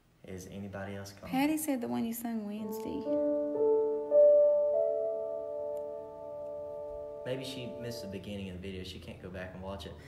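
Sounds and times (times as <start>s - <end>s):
electronic keyboard chord: 2.6s - 8.8s.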